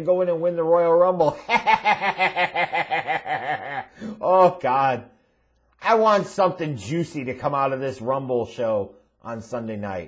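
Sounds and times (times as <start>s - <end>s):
man laughing: 1.2s - 4.5s.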